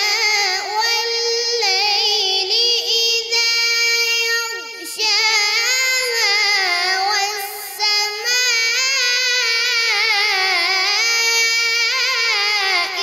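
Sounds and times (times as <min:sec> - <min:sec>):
boy chanting melodically: 0:00.0 - 0:13.0.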